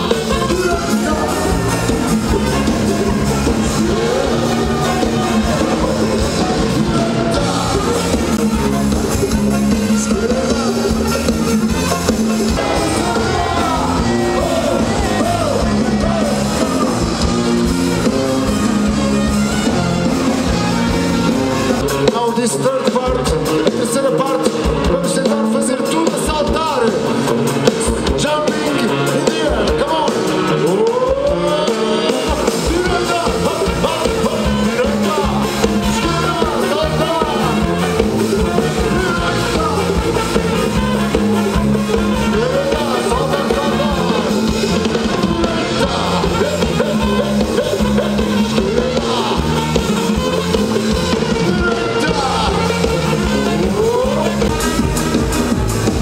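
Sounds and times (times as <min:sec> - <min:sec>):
deep bass and drums: 0:00.0 - 0:22.4, 0:32.3 - 0:56.0
horn section playing: 0:00.0 - 0:56.0
lead singer: 0:00.0 - 0:56.0.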